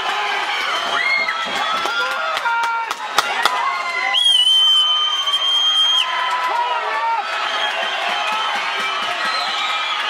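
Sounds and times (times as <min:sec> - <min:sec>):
shrill whistle blown: 0:04.1 - 0:06.1, 0:07.5 - 0:10.0.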